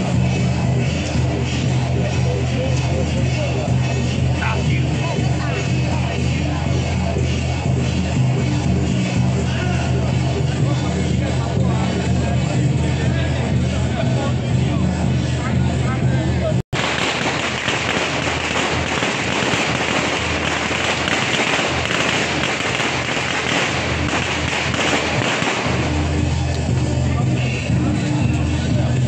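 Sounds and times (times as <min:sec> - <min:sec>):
music with low tones: 0:00.0 - 0:29.0
string of firecrackers crackling: 0:16.7 - 0:29.0.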